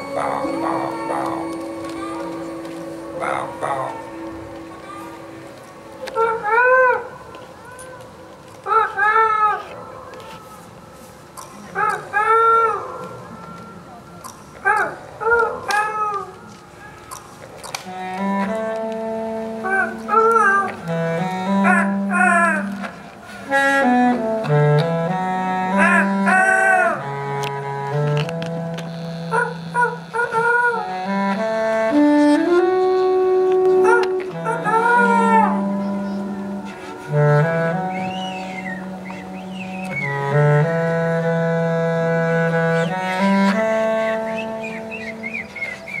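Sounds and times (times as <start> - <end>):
person joik singing: 0.0 - 5.5
low held bass notes: 0.0 - 7.3, 17.9 - 46.0
reed wind instrument: 0.0 - 11.4, 15.1 - 46.0.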